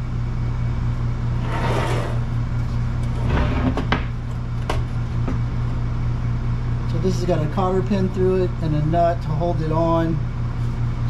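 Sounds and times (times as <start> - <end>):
metal scraping and clunking: 1.4 - 2.3, 3.0 - 4.0.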